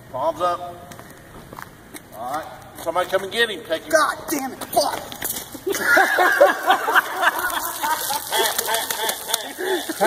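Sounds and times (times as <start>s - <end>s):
people laughing: 5.6s - 10.0s.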